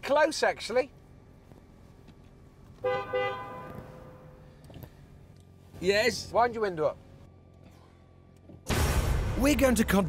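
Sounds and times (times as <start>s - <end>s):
car horn toots: 2.8s - 4.5s.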